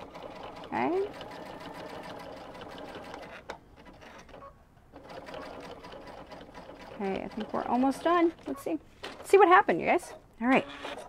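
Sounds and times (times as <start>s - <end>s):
sewing machine stitching: 0.0s - 9.5s.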